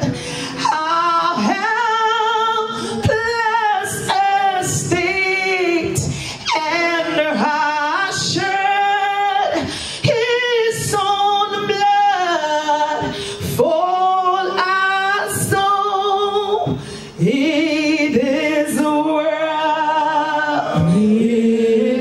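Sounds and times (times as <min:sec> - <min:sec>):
woman singing into microphone: 0:00.0 - 0:22.0.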